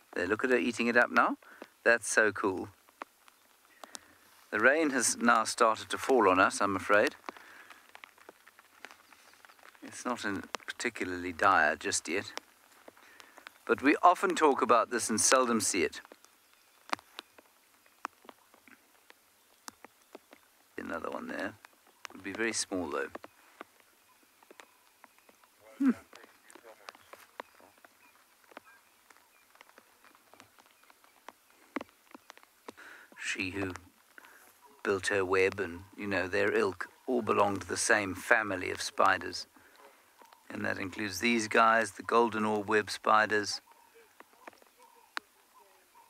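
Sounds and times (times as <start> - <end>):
light rain drops ticking: 0.0 - 46.0.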